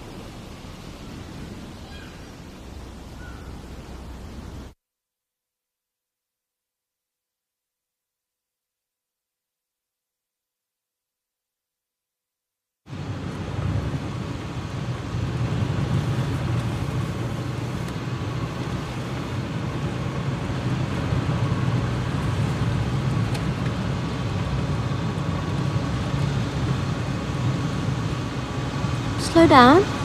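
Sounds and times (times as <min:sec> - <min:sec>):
car cabin engine and tyre rumble: 0:12.9 - 0:30.0.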